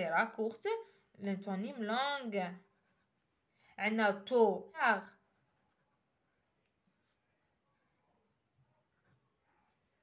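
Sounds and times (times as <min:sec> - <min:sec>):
felt-tip pen scraping on paper: 0:02.5 - 0:03.4.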